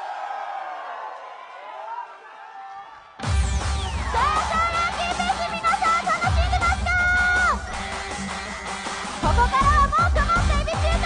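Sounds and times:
live pop band playing: 3.2 - 11.0.

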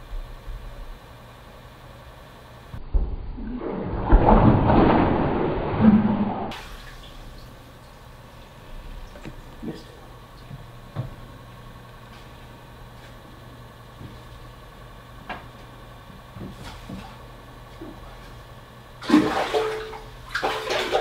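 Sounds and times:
steady low hum: 0.0 - 21.0
water splashing hard: 19.0 - 21.0.

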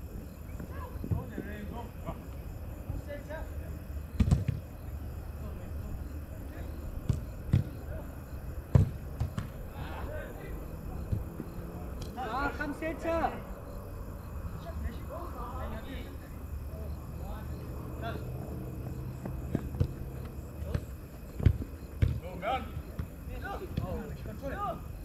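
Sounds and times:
distant players shouting: 0.1 - 25.0
ball being kicked thuds: 4.2 - 4.7, 7.0 - 7.8, 8.7 - 9.6, 19.5 - 22.3.

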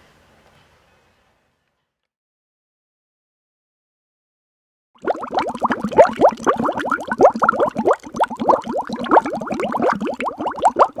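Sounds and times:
liquid bubbling and gurgling: 5.0 - 11.0.

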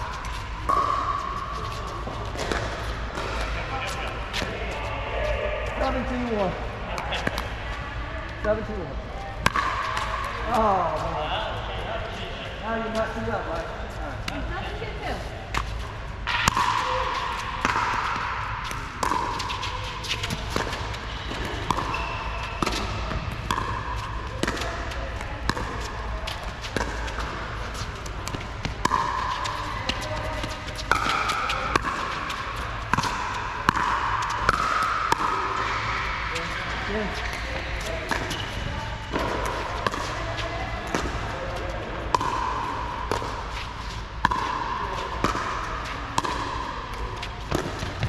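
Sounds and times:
ball bouncing on court: 0.0 - 4.8, 5.7 - 7.6, 9.3 - 11.2, 15.5 - 48.0.

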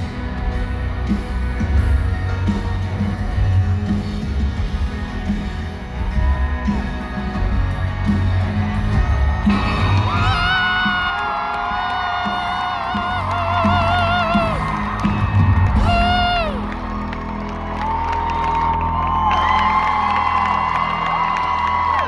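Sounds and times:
live band playing: 0.0 - 22.0
crowd cheering and whooping: 4.6 - 22.0.

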